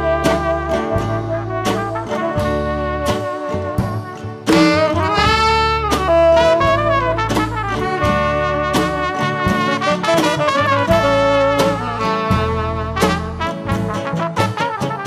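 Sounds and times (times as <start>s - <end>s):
saxophone and brass melody: 0.0s - 15.0s
steady bass line: 0.0s - 15.0s.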